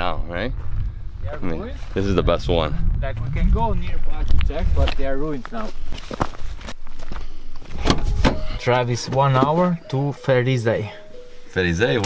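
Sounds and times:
footsteps on gravel: 0:04.2 - 0:07.4.

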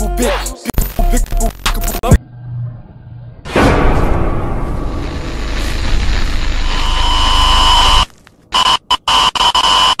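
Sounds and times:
electronic static buzz glitch: 0:05.0 - 0:10.0.

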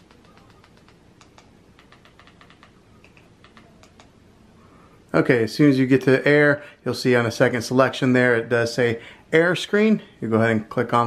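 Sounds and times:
remote control buttons clicking: 0:00.0 - 0:04.1.

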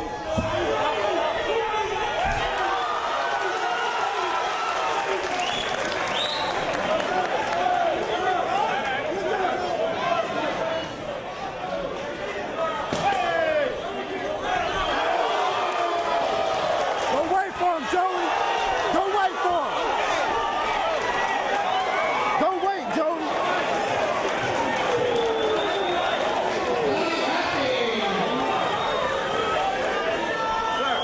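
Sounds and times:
crowd shouting and yelling: 0:00.0 - 0:31.0.

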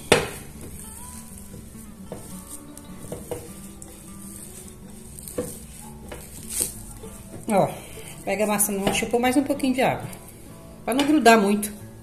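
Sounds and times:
hand squelching damp dough: 0:00.0 - 0:10.2.

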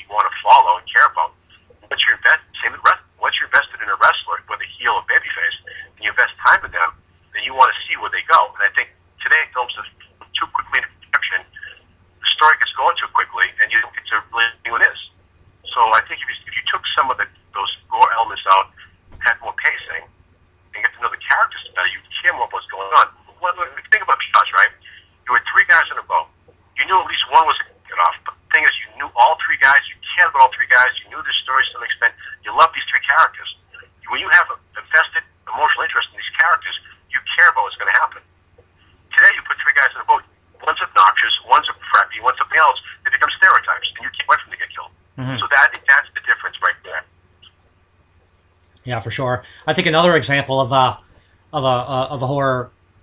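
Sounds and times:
person talking over telephone: 0:00.0 - 0:15.1, 0:15.7 - 0:20.1, 0:20.8 - 0:38.2, 0:39.1 - 0:47.1, 0:48.9 - 0:52.7
faint steady hum: 0:00.0 - 0:53.0.

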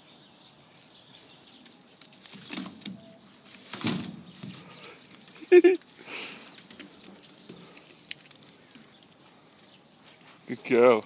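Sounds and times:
person laughing: 0:05.3 - 0:05.9.

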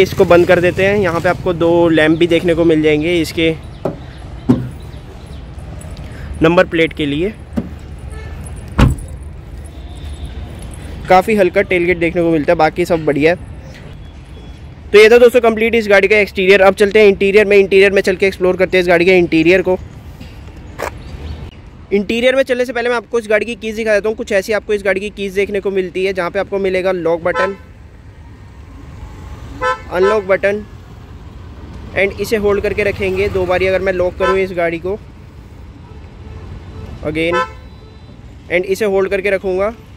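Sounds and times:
car boot lid shutting thud: 0:03.8 - 0:04.7, 0:08.8 - 0:09.0
car horn chirp: 0:36.2 - 0:38.2.

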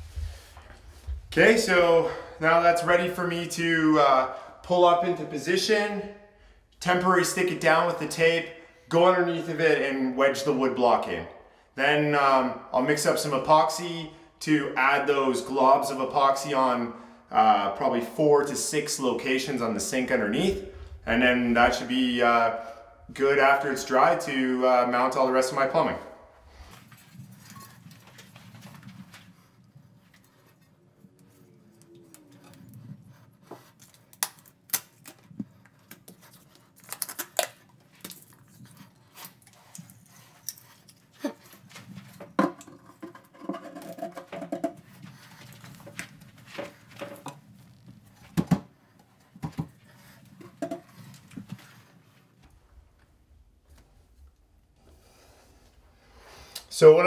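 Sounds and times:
rustling of hand work: 0:26.4 - 0:56.5.

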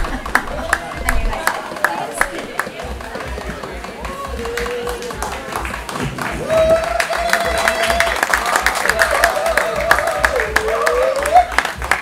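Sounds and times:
audience applause: 0:00.0 - 0:12.0.

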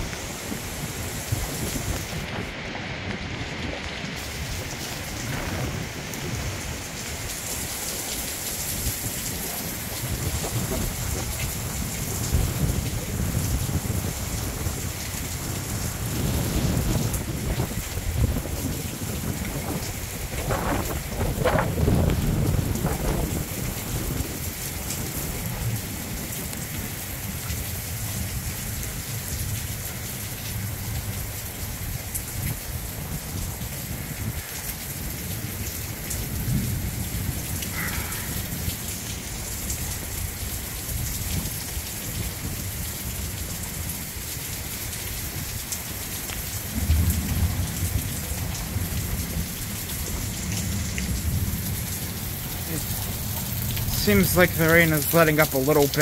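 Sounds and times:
heavy rain pouring: 0:00.0 - 0:56.0
thunder rumbles: 0:00.0 - 0:56.0.

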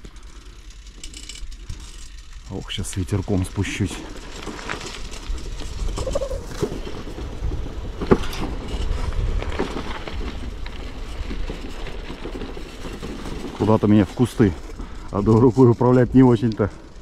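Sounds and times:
bicycle tyres rumbling: 0:00.0 - 0:17.0
bike rattling and knocking: 0:00.0 - 0:17.0.

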